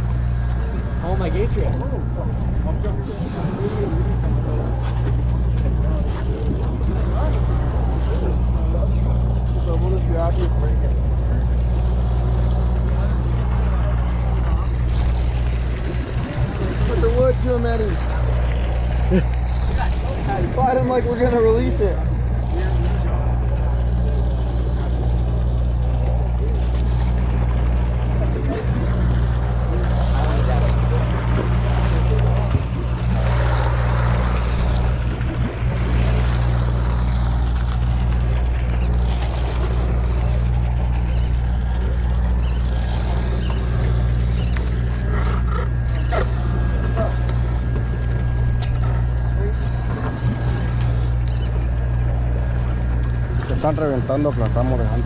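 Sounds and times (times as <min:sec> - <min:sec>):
boat engine droning: 0:00.0 - 0:55.0.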